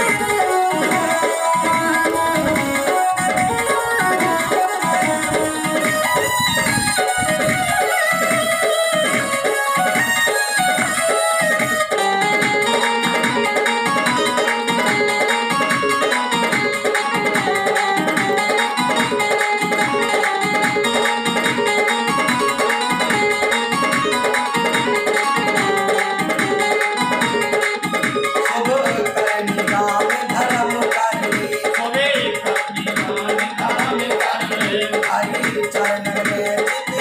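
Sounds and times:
electronic keyboard melody: 0:00.0 - 0:37.0
steady drum rhythm: 0:00.0 - 0:37.0.

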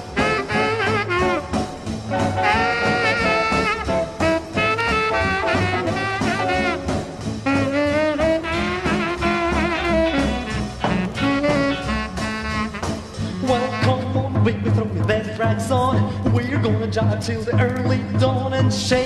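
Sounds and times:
horn solo: 0:00.0 - 0:14.3
band rhythm: 0:00.0 - 0:19.0.

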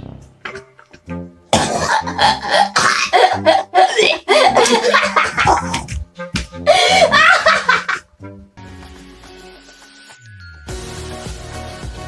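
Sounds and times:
background music: 0:00.0 - 0:12.0
man coughing and gagging: 0:01.5 - 0:05.9
woman laughing: 0:02.0 - 0:05.9, 0:06.6 - 0:08.1.

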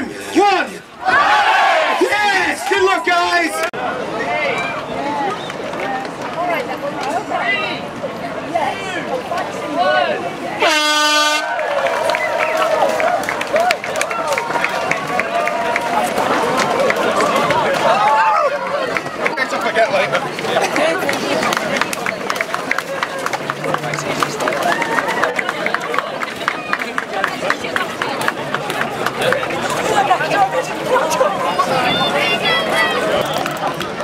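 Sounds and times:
people talking and shouting: 0:00.0 - 0:34.0
runners' footsteps on tarmac: 0:11.7 - 0:31.3.

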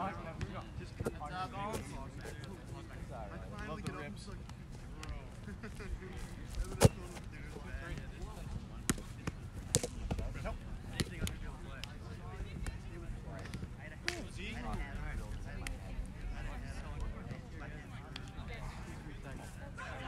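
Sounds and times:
distant chatter of people: 0:00.0 - 0:20.0
balls being struck: 0:06.6 - 0:07.3, 0:08.8 - 0:11.9.

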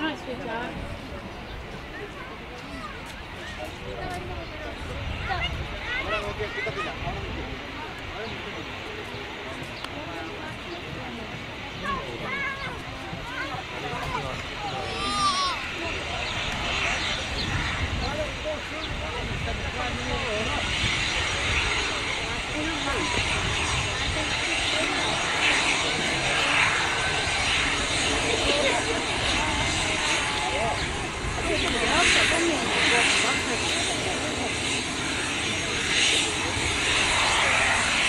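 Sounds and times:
jet taxiing: 0:00.0 - 0:38.0.

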